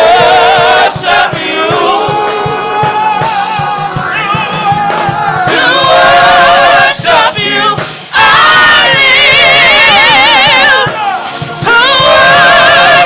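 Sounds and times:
gospel choir singing with vibrato: 0.0 - 13.0
steady drum beat: 0.0 - 13.0.

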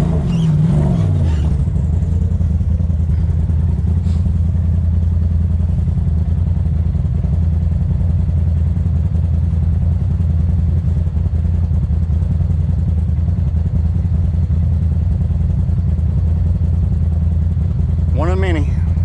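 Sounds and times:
engine idling with low drone: 0.0 - 19.0.

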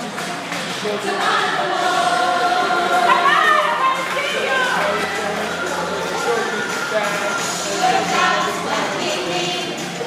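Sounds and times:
music: 0.0 - 10.0
group of voices singing: 0.8 - 10.0.

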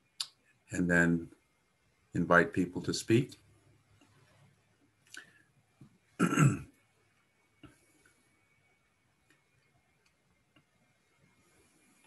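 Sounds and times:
man clearing throat: 6.2 - 6.7.

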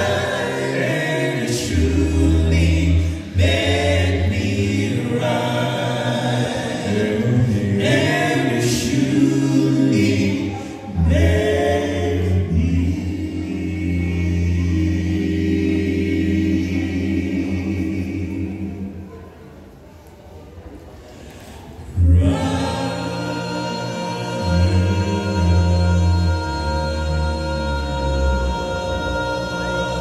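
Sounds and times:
male vocal group singing a cappella: 0.0 - 19.1, 21.9 - 30.0.

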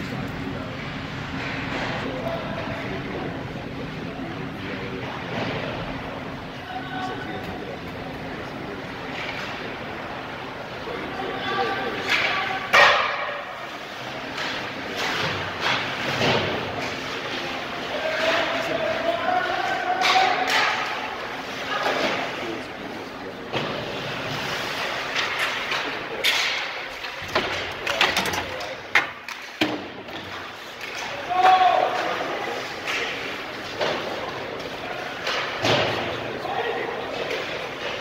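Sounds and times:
ice rink background noise: 0.0 - 38.0
voices of players and spectators: 0.0 - 38.0.

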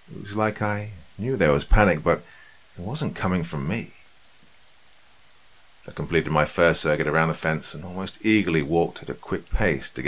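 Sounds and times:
faint steady hiss: 0.0 - 10.0
man speaking: 0.1 - 4.1, 5.8 - 10.0.

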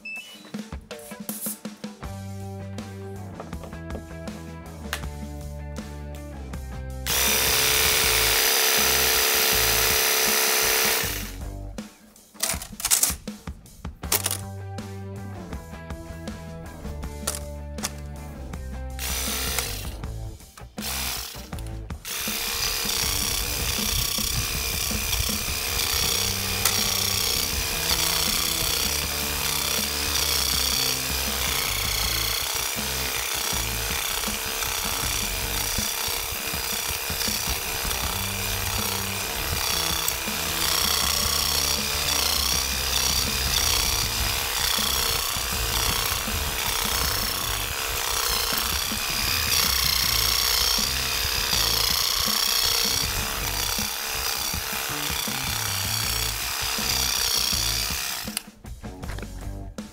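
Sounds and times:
background music with bass line: 0.0 - 59.9
electric weeder blade scraping soil: 7.0 - 11.6, 16.4 - 58.5.

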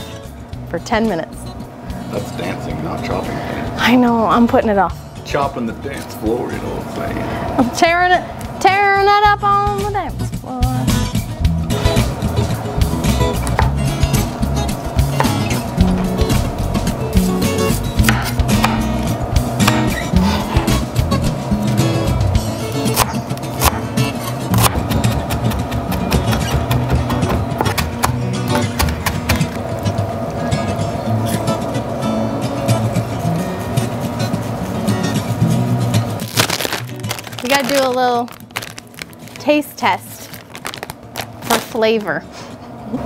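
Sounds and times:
background music: 0.0 - 40.8.

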